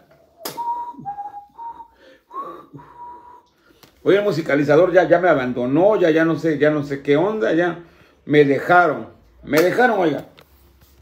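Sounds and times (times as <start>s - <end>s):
person whistling a tune: 0.2s - 3.8s.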